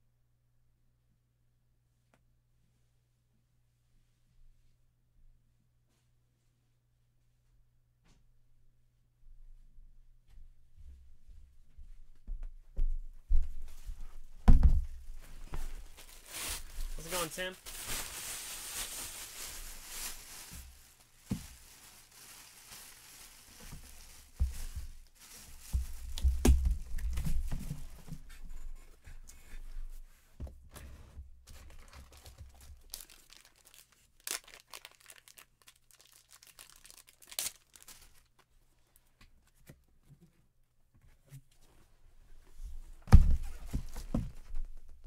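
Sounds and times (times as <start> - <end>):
paper crinkling and tearing: 15.8 - 27.1, 31.5 - 38.4.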